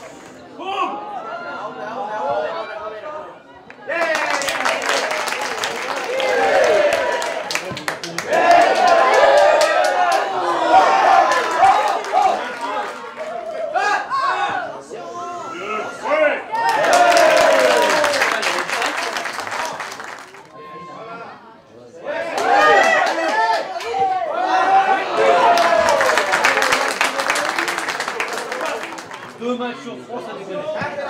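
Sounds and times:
sharp claps: 6.9 - 10.2.

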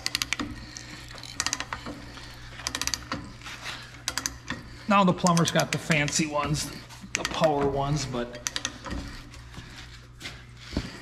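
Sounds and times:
ratchet pawl clicking: 0.0 - 3.3, 4.0 - 4.6, 5.2 - 6.3, 8.4 - 9.0.

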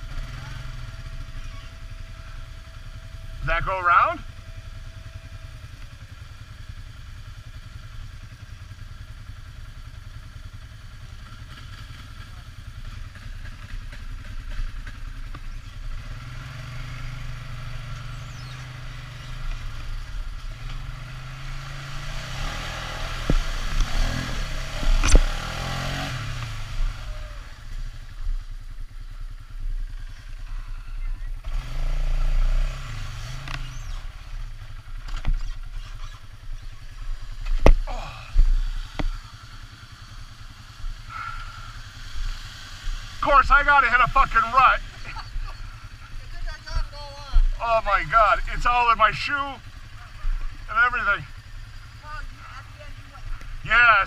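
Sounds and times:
quad engine running: 0.0 - 54.0.

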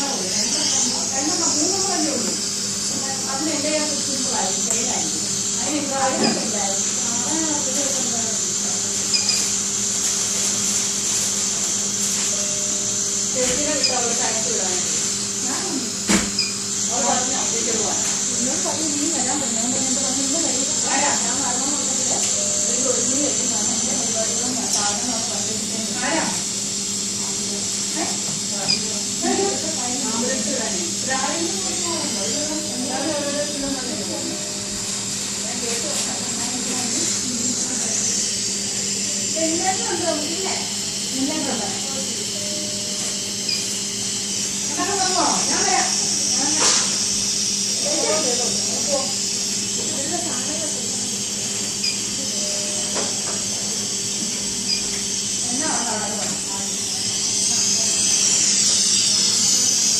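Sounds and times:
background talk: 0.0 - 8.9, 16.8 - 26.5, 27.1 - 43.4, 47.6 - 54.7, 55.4 - 59.8.

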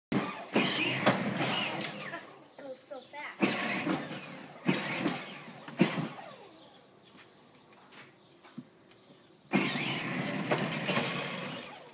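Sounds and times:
plastic wheels rumbling on concrete: 0.1 - 2.2, 3.4 - 6.2, 9.5 - 11.9
electric motor whining: 3.4 - 6.6, 9.5 - 11.9.

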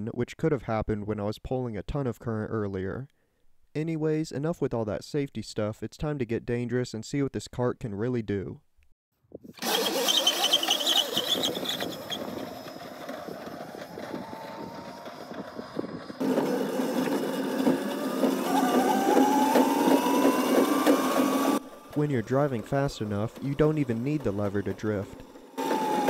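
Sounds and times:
electric motor whining: 9.6 - 26.0
hard wheels rattling on concrete: 9.6 - 26.0.

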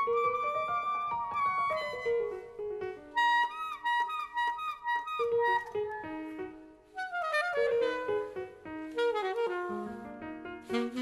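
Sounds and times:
small jazz band backing: 0.0 - 11.0
jazz saxophone solo: 3.2 - 6.0, 6.9 - 11.0.

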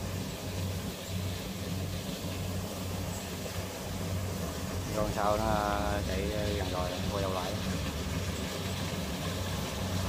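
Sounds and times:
combine harvester engine droning: 0.0 - 10.0
distant combine harvester: 0.0 - 10.0.

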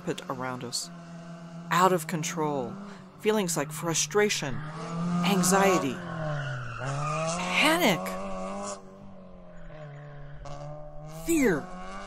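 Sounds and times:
car engine drone: 0.0 - 12.0.

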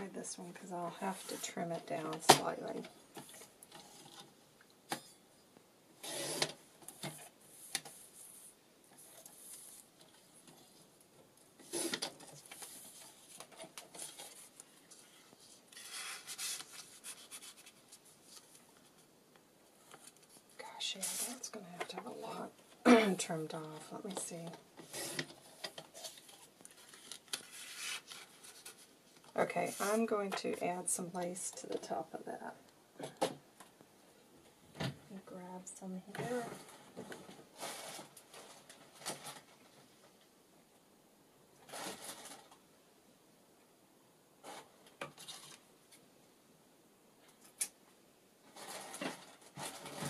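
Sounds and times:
card rustling: 11.7 - 19.1, 24.8 - 30.1.

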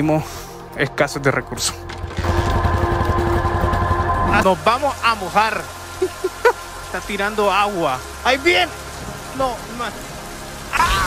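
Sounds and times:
background music: 0.0 - 11.0
motorcycle engine running: 2.0 - 4.4.

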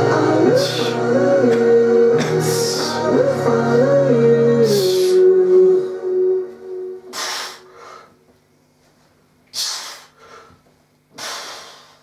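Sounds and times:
background music note: 0.0 - 7.9
sharp hissing breath: 7.1 - 8.2, 9.5 - 12.0.

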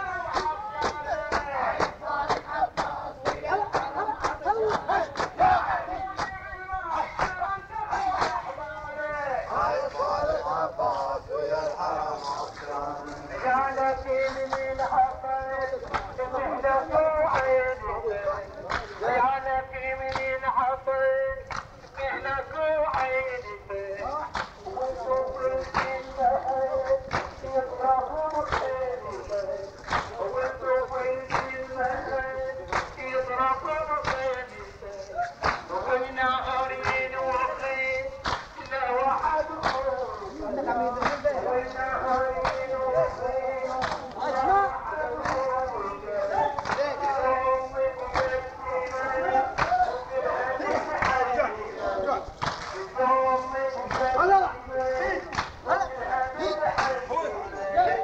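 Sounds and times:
man chanting: 0.0 - 58.0
chest beating slaps: 7.0 - 8.6, 15.8 - 16.5, 18.6 - 19.1, 20.0 - 20.4, 24.2 - 24.8, 25.5 - 27.7, 28.3 - 34.6, 35.2 - 35.9, 36.5 - 40.4, 41.0 - 44.4, 45.1 - 50.0, 50.7 - 55.7.

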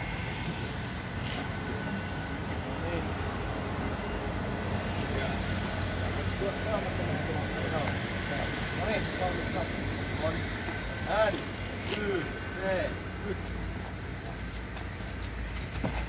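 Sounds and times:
low mechanical hum: 0.0 - 7.3.

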